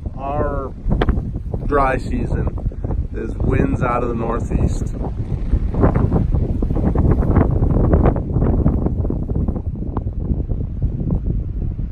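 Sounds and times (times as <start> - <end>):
gusty wind buffeting microphone: 0.0 - 11.9.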